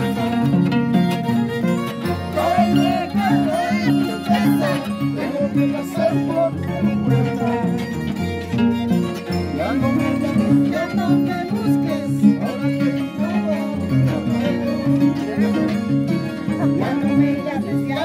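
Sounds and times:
harp and violin dance tune: 0.0s - 13.9s.

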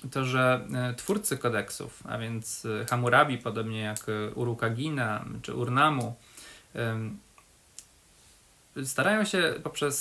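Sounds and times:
man lecturing: 0.0s - 7.2s, 8.8s - 10.0s.

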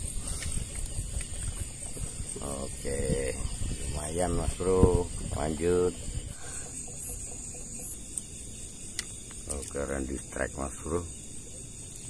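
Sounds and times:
crickets chirring: 0.0s - 12.0s.

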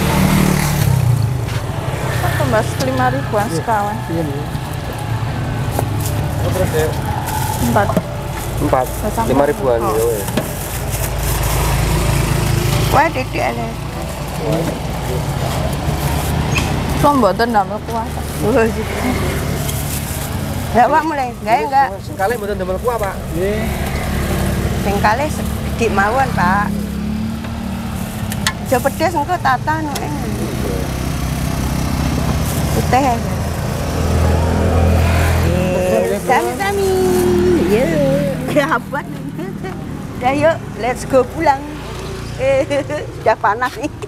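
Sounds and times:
engine idling: 0.0s - 18.8s
small engine running: 29.8s - 40.2s
faint voices: 34.5s - 44.0s.

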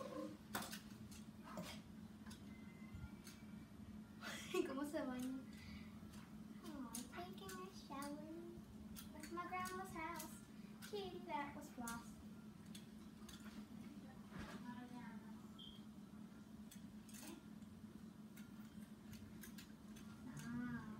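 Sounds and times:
steady low hum: 0.0s - 20.9s
girl talking quietly: 13.9s - 15.5s.

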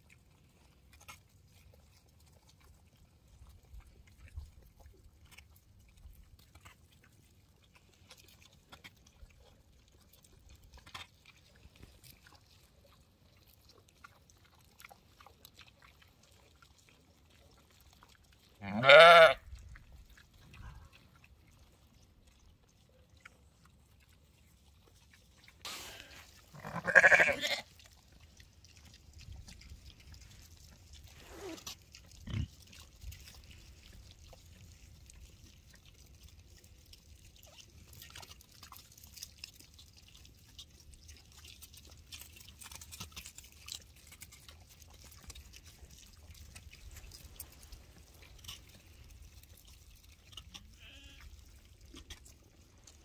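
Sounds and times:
sheep calling: 18.6s - 19.4s, 26.6s - 27.6s
sheep crunching straw: 25.6s - 32.4s, 41.9s - 53.0s.

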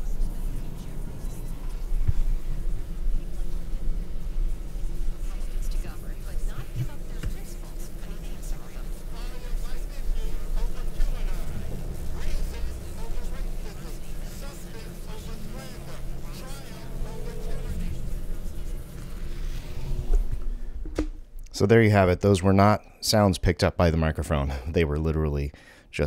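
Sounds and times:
faint radio voices and music: 0.0s - 20.7s
low buzzing hum: 0.0s - 22.8s.

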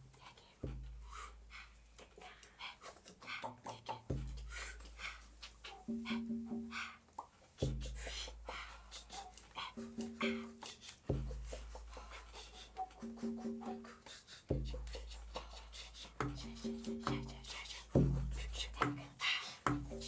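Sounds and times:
hand drum strikes: 4.1s - 4.5s, 7.6s - 8.0s, 9.8s - 11.5s, 14.5s - 14.9s, 16.2s - 19.0s, 19.6s - 20.0s
repeated mid-pitched notes: 5.8s - 7.9s, 9.7s - 11.5s.

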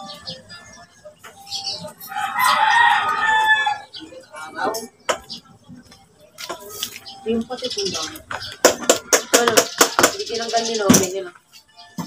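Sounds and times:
rooster crowing: 2.1s - 3.9s.

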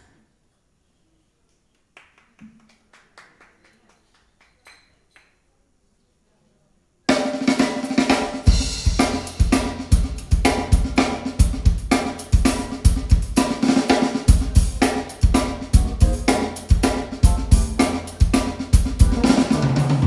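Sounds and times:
drum kit: 7.1s - 20.0s
jazz quartet playing: 8.4s - 20.0s.

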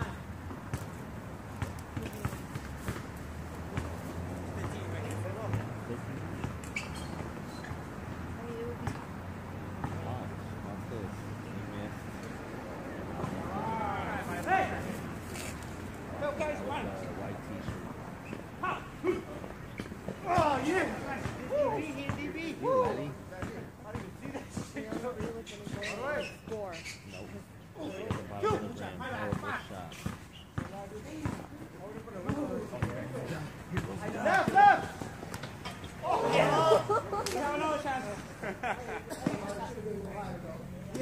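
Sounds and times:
background noise: 0.0s - 41.0s
players' voices calling out: 9.8s - 15.2s, 16.0s - 41.0s
loud shout: 13.4s - 14.8s, 21.4s - 21.9s, 22.5s - 23.1s, 34.2s - 35.0s, 36.0s - 37.2s.

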